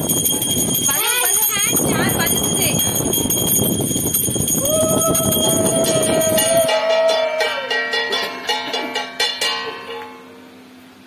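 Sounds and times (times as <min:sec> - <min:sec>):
bell ringing: 0:00.0 - 0:10.3
voices: 0:00.8 - 0:03.6
long steady note: 0:02.2 - 0:07.9.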